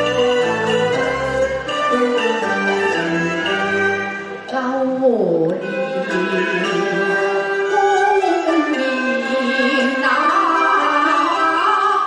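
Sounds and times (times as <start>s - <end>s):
bowed strings playing melody: 0.0s - 4.7s, 5.4s - 12.0s.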